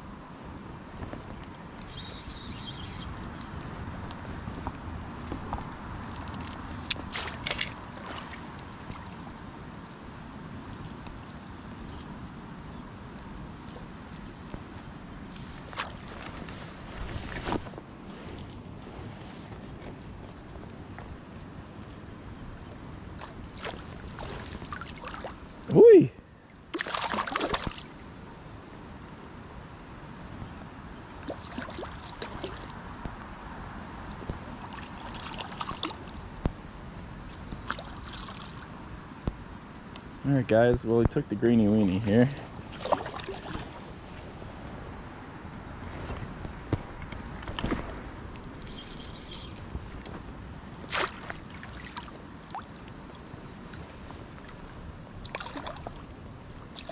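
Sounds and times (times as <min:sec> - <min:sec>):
water splashes: 0:06.2 - 0:09.5, 0:23.2 - 0:26.0, 0:26.7 - 0:28.2, 0:31.2 - 0:32.8, 0:34.6 - 0:36.2, 0:37.3 - 0:38.7, 0:42.6 - 0:44.0, 0:50.8 - 0:53.1, 0:54.4 - 0:56.9
creek water rushing: 0:50.7 - 0:56.9.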